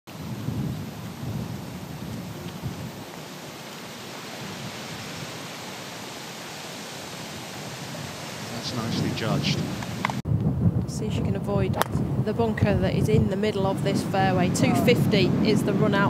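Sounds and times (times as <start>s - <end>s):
wind on microphone: 0.1s - 3.2s, 7.5s - 16.0s.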